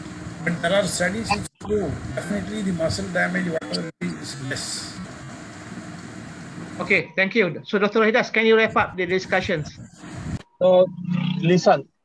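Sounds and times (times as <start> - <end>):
microphone hiss and hum: 0.0 - 11.9.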